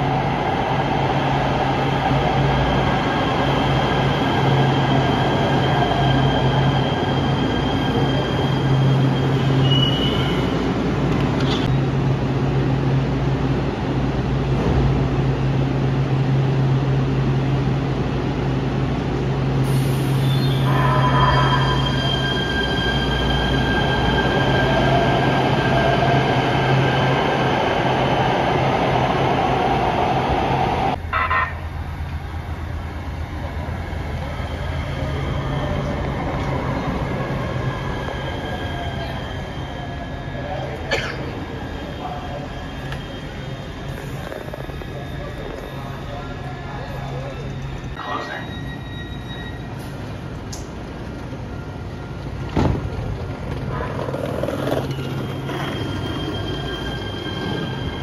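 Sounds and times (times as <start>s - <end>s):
electric train hum: 0.0s - 58.0s.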